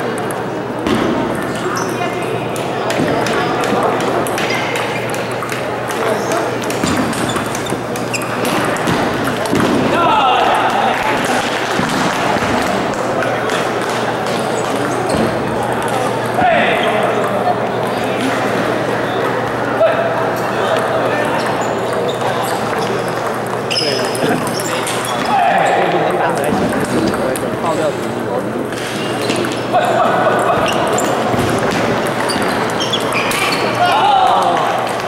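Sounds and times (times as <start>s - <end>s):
background chatter of voices: 0.0s - 35.0s.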